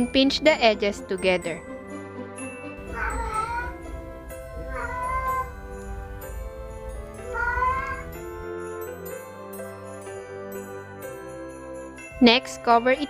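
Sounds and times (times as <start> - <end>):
cat meowing loudly: 2.8 - 6.2, 6.9 - 8.4.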